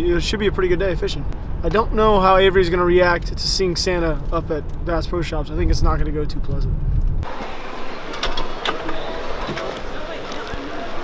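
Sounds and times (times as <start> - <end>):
distant voices in a store: 7.2 - 11.0.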